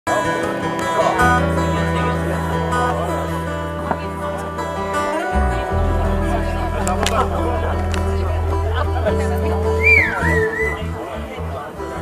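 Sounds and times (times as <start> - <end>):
electric guitar playing: 0.1 - 12.0
electric bass plucking low notes: 1.2 - 12.0.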